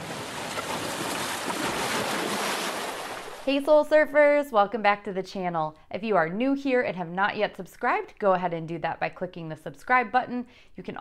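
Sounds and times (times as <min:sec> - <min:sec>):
ocean waves breaking on rocks: 0:00.0 - 0:03.5.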